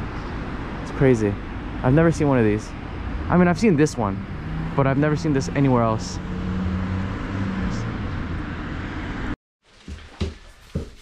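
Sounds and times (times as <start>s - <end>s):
road traffic rumble: 0.0s - 9.4s.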